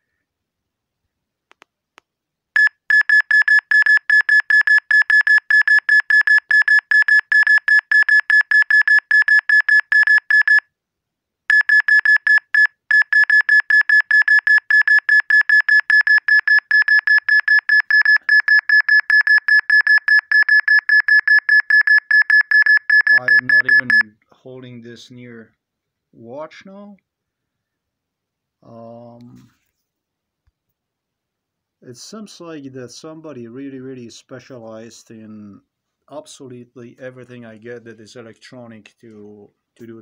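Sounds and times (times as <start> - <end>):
fast high-pitched alarm beeps: 2.6 - 10.6, 11.5 - 24.0.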